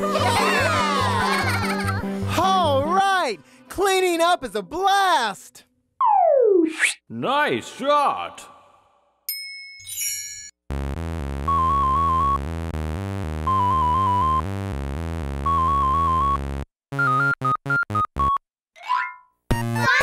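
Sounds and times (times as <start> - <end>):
ding and chime sparkle: 9.3 - 10.6
chiptune game music: 10.7 - 18.4, 19.5 - 20.0.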